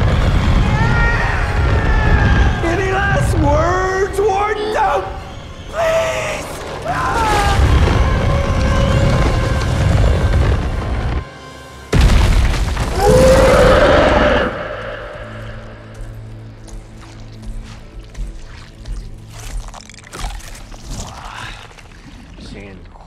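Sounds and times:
loud booming film music: 0.0s - 22.1s.

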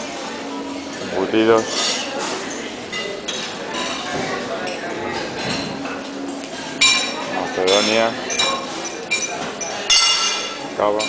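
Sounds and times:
crockery and cutlery clinking: 0.6s - 11.0s.

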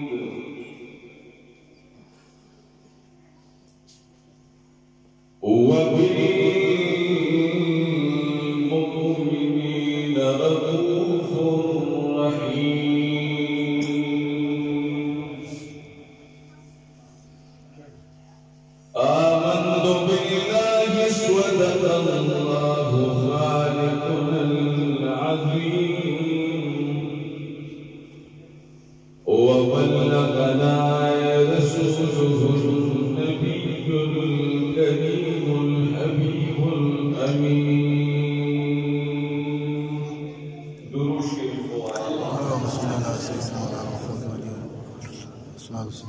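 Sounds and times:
men chanting in long held notes: 0.0s - 1.4s, 5.4s - 16.2s, 18.9s - 28.3s, 29.2s - 45.9s.

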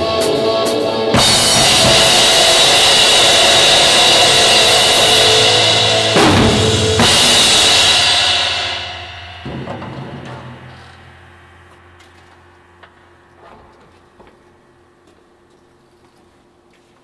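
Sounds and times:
bass drum: 1.2s - 12.0s
crash cymbals ringing: 1.2s - 13.4s.

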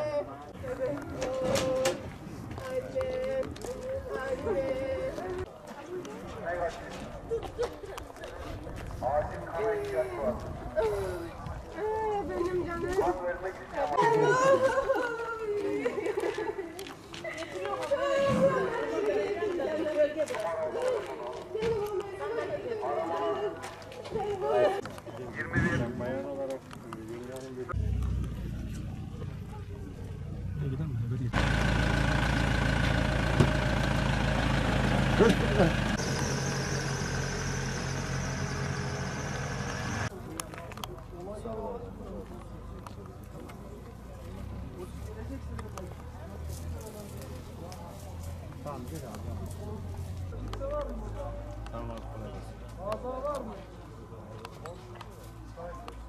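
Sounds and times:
faint voices talking: 0.0s - 31.3s
van engine idling: 31.3s - 40.1s.

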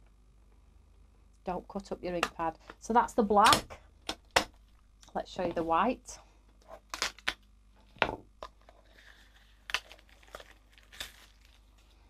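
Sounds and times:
plastic wrapping tearing and crinkling: 8.9s - 12.0s.

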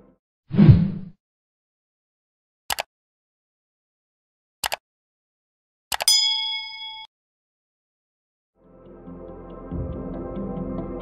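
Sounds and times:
sharp click: 4.6s - 4.8s, 5.9s - 6.2s
bell-like ding: 6.1s - 7.1s.

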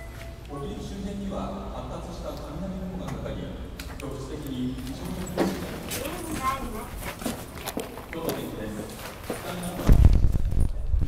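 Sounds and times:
footsteps: 4.6s - 10.7s.

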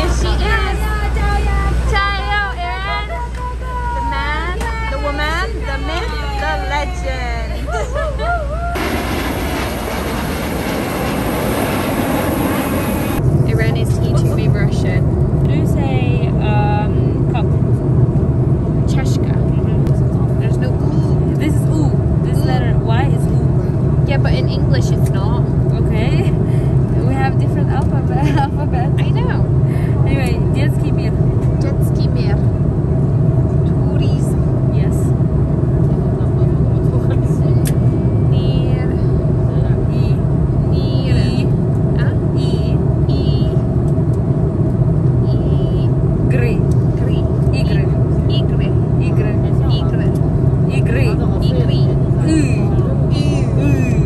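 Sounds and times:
voices: 0.0s - 8.9s, 13.4s - 17.9s, 18.6s - 32.6s, 33.6s - 43.7s, 45.2s - 54.0s
airliner cabin drone: 0.0s - 54.0s.

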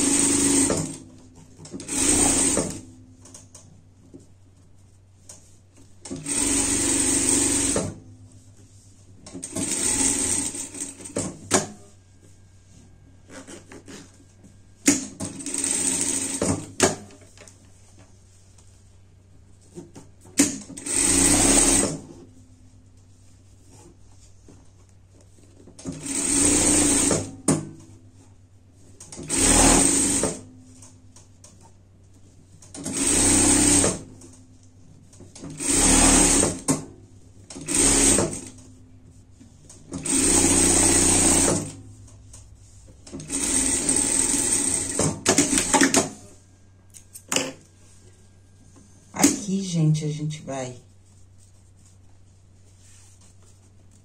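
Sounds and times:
sewing machine stitching: 1.8s - 2.8s, 6.1s - 8.0s, 9.4s - 11.7s, 20.4s - 22.1s, 25.8s - 27.3s, 29.2s - 30.4s, 32.8s - 34.1s, 35.4s - 36.7s, 37.5s - 38.6s, 39.9s - 41.8s, 43.1s - 46.2s.

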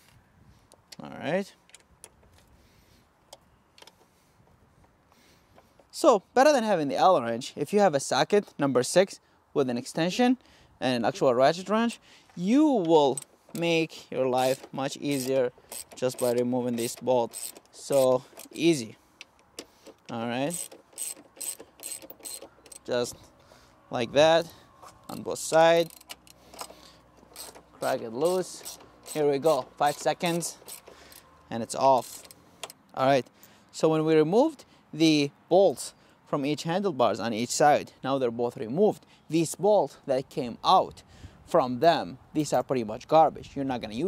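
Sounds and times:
faint wrench ticks: 14.4s - 18.6s, 19.2s - 22.9s, 25.5s - 31.2s.

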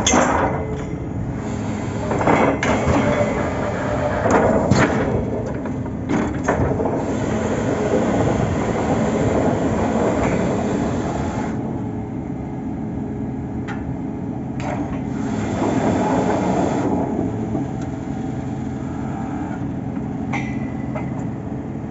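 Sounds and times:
drilling rig engine running: 0.0s - 20.3s.

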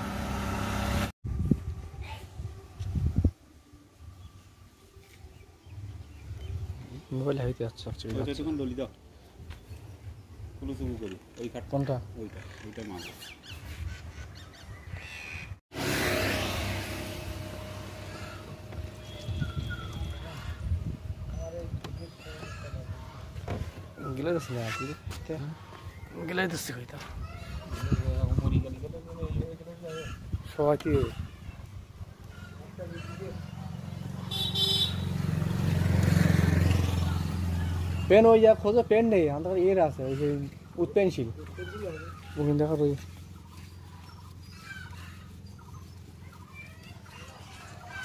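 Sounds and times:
motorcycle passing by: 0.0s - 1.1s, 15.7s - 21.5s, 32.3s - 42.4s
birds calling: 5.3s - 15.6s, 17.3s - 48.0s
high-pitched horn toot: 18.9s - 20.6s, 34.3s - 35.1s.

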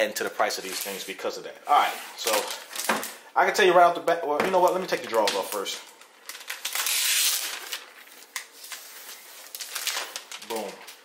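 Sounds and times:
plastic film crinkling: 0.2s - 1.3s, 4.4s - 11.0s.

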